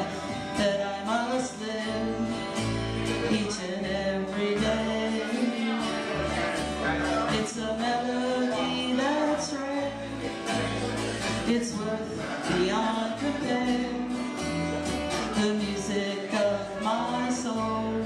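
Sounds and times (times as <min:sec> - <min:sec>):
acoustic bass guitar: 0:00.0 - 0:18.0
strummed acoustic guitar: 0:00.0 - 0:18.0.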